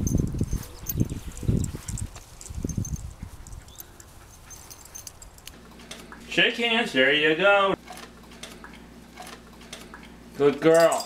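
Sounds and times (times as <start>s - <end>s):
metal collar tags clicking: 0.0s - 6.2s, 10.4s - 11.0s.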